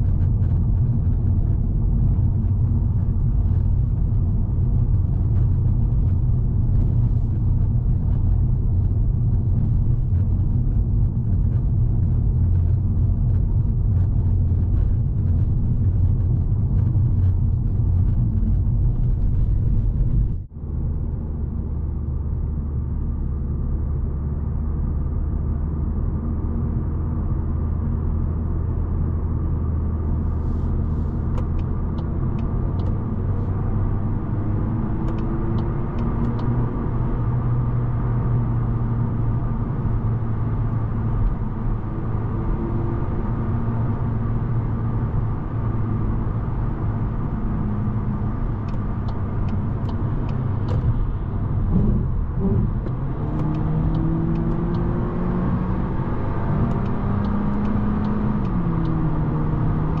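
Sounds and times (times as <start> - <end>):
car engine from inside cabin: 0.0 - 60.0.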